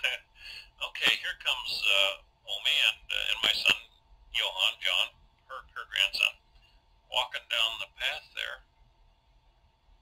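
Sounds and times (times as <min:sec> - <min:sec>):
indistinct voice on old tape: 0:00.0 - 0:08.8.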